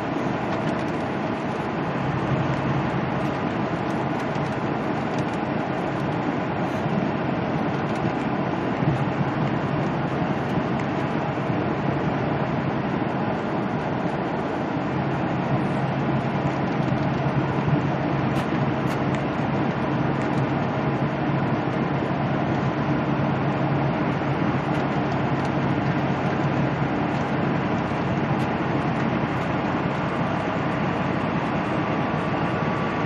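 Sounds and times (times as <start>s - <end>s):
diesel engine hum: 0.0s - 33.0s
tyre and road noise: 0.0s - 33.0s.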